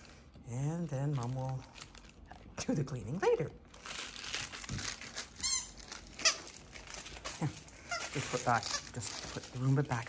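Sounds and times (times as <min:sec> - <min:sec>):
plush toys rustling: 0:00.0 - 0:10.0
squeaky dog toy: 0:05.4 - 0:06.6, 0:07.9 - 0:09.2.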